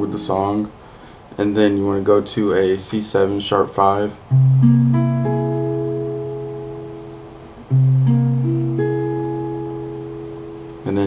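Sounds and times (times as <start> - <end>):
acoustic guitar chord ringing: 4.3 - 11.0
guitar notes picked: 4.3 - 11.0.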